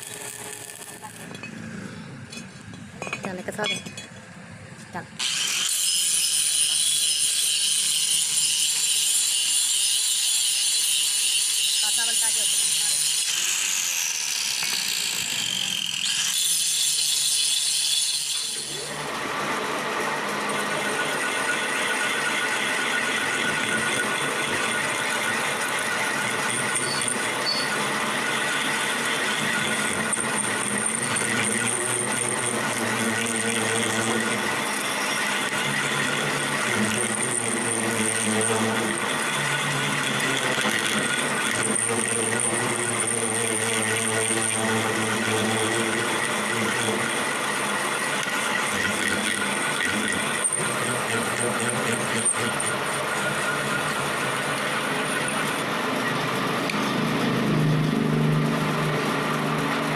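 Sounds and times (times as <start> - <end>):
metal lathe boring steel: 0.0 - 4.4, 5.2 - 59.9
angle grinder grinding steel: 0.0 - 59.9.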